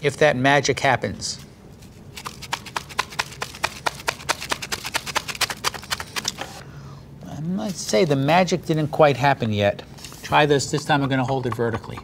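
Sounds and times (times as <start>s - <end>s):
plastic shaker knocking: 2.2s - 6.3s.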